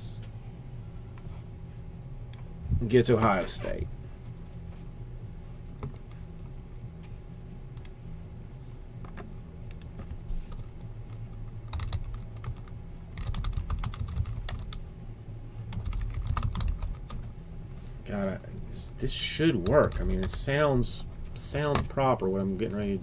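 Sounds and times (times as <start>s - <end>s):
steady low hum: 0.0s - 23.0s
computer keyboard typing: 11.7s - 14.8s, 15.7s - 17.3s.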